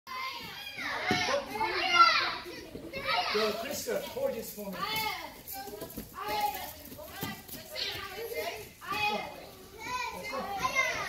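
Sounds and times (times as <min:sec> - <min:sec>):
children chattering and calling out: 0:00.1 - 0:11.0.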